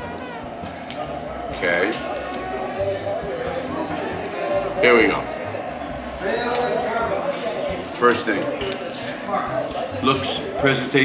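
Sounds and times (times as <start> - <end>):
faint music: 0.0 - 11.0
indistinct background voices: 0.0 - 11.0.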